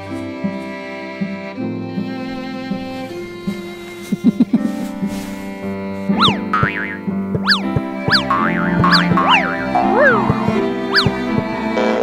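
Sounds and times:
background music: 0:00.0 - 0:12.0
cartoon swooping pitch glides: 0:06.2 - 0:12.0.

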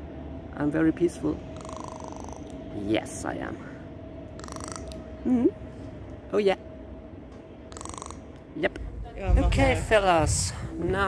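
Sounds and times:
faint steady background hum: 0:00.0 - 0:11.0
woman murmuring mm-hmm: 0:05.2 - 0:05.6.

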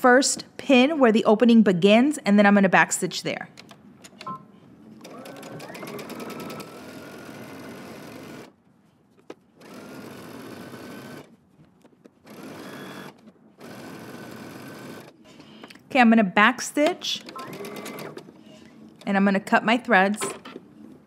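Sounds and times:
sewing machine stitching: 0:05.0 - 0:08.5, 0:09.6 - 0:11.3, 0:12.3 - 0:15.2, 0:17.2 - 0:18.3.

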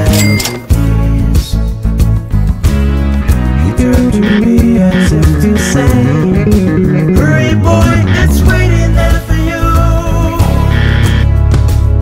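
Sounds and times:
band backing track: 0:00.0 - 0:12.0
electric bass fast run: 0:03.4 - 0:09.2.

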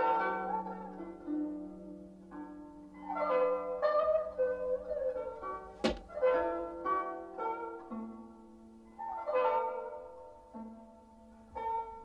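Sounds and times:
held and plucked string music: 0:00.0 - 0:12.0
sharp thump: 0:05.8 - 0:06.1.

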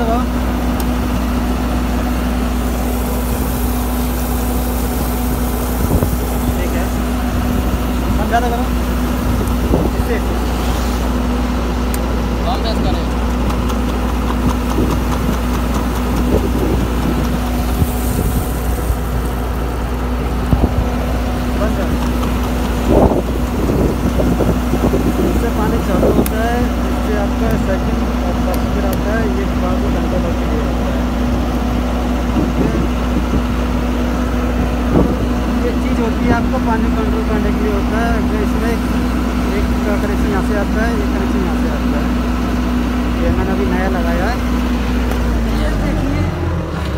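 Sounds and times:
engine idling: 0:00.0 - 0:46.9.

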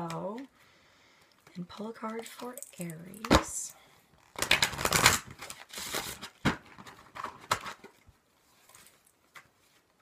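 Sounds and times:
cards rustling and snapping: 0:04.2 - 0:09.8.

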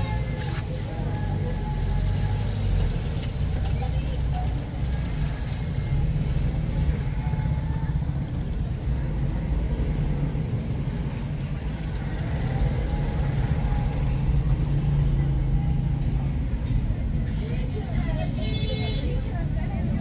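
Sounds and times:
motorcycle engines rumbling: 0:00.0 - 0:20.0.

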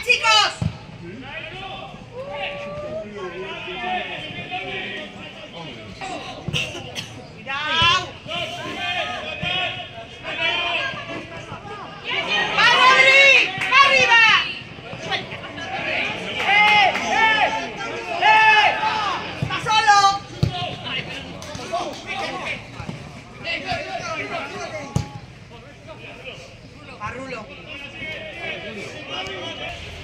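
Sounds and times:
voices shouting: 0:01.2 - 0:06.5, 0:07.4 - 0:22.8.

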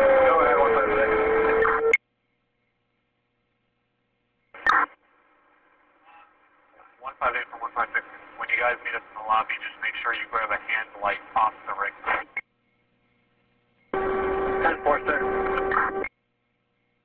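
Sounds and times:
steady radio hum: 0:04.5 - 0:17.0
police radio speech: 0:06.8 - 0:12.4, 0:14.2 - 0:16.1.

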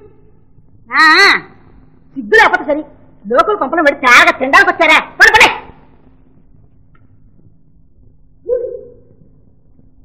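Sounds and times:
old film soundtrack hum: 0:00.0 - 0:10.0
woman shouting angrily: 0:05.2 - 0:05.8.

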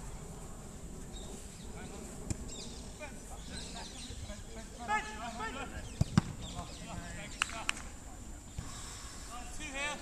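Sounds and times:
distant players calling: 0:01.8 - 0:07.8
ball being kicked: 0:06.0 - 0:06.4.

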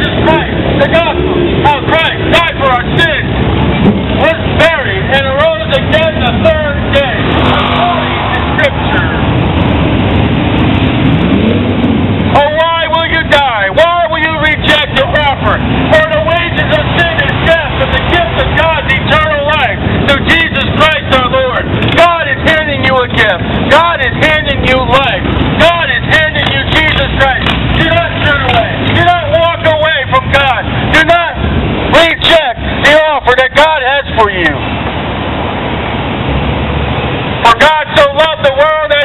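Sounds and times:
man shouting preaching: 0:00.0 - 0:03.3, 0:04.2 - 0:09.3, 0:12.3 - 0:34.6, 0:37.4 - 0:39.0
motorcycles passing: 0:00.0 - 0:39.0
street traffic: 0:00.0 - 0:39.0.

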